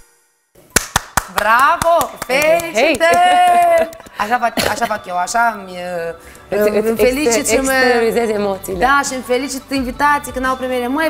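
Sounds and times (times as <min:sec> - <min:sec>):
woman clapping hands: 0:00.7 - 0:04.3
woman's excited voice: 0:02.7 - 0:04.0.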